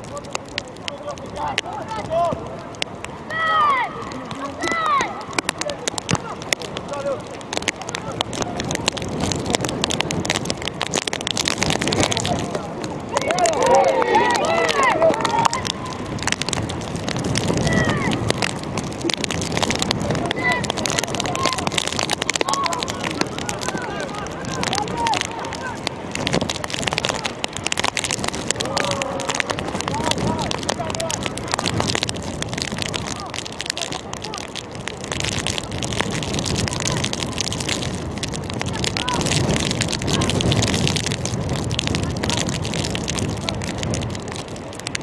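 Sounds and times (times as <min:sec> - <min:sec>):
crackling clicks: 0:00.0 - 0:45.0
wind noise on microphone: 0:00.0 - 0:45.0
players and coaches shouting: 0:00.9 - 0:02.6, 0:03.2 - 0:07.1, 0:13.1 - 0:16.2, 0:17.5 - 0:18.2, 0:20.1 - 0:21.8, 0:22.4 - 0:26.2, 0:28.5 - 0:31.5
distant players shouting: 0:13.1 - 0:16.1.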